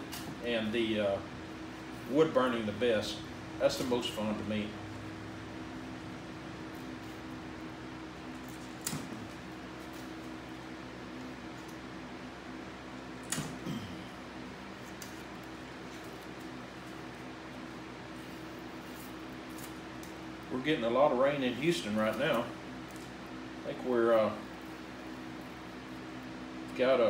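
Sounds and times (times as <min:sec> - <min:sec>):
machine hum: 0:00.0 - 0:27.0.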